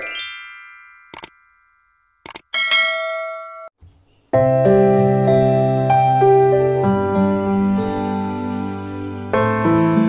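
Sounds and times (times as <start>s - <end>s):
bright bell ding: 0.0s - 3.7s.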